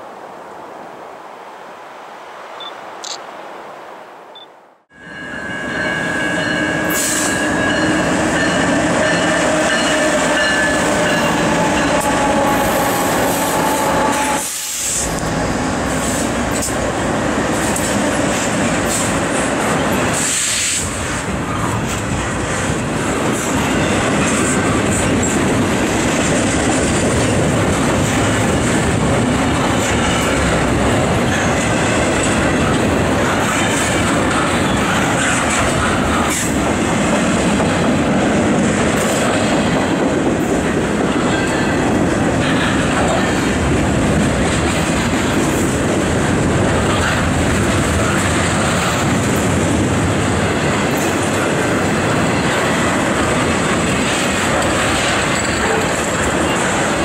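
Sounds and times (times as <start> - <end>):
freight train wheels on rails: 4.9 - 57.0.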